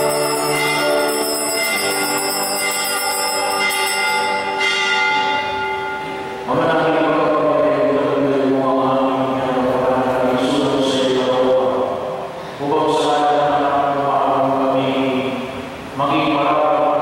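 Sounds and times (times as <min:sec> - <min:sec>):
chanted singing of held notes: 0:00.0 - 0:04.6
sustained ringing chord: 0:00.0 - 0:07.3.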